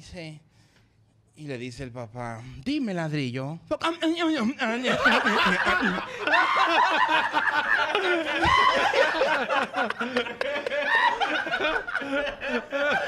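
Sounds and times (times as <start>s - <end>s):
group laughing loudly: 4.8s - 13.0s.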